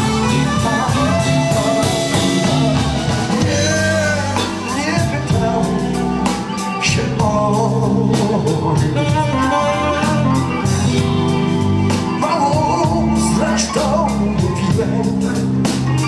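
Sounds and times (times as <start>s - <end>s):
tenor saxophone: 0.0s - 6.9s, 8.6s - 13.1s
drum kit: 0.0s - 16.0s
electric guitar: 0.0s - 16.0s
keyboard: 0.0s - 16.0s
person singing: 0.0s - 16.0s.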